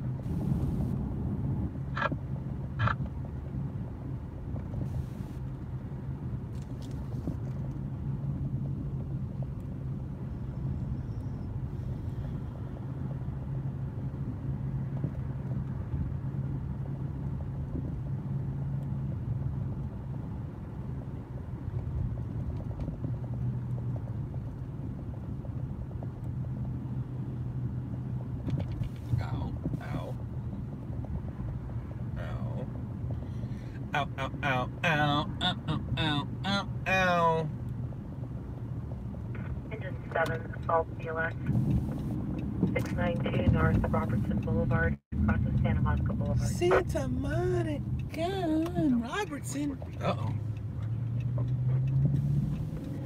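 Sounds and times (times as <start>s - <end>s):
car engine hum: 0.0s - 53.0s
road rumble: 0.0s - 53.0s.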